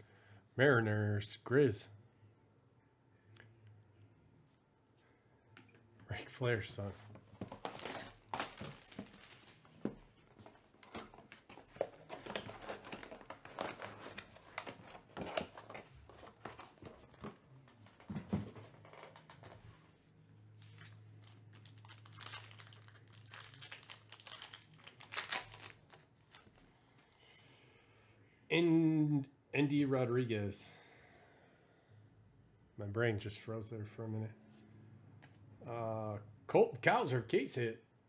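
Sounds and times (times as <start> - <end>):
foil wrappers crinkling and tearing: 7.5 - 9.6, 11.8 - 15.8, 20.8 - 26.6.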